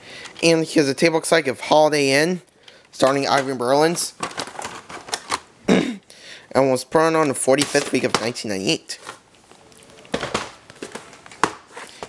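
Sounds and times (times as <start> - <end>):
plastic cassette clicks and rattles: 4.2 - 5.4.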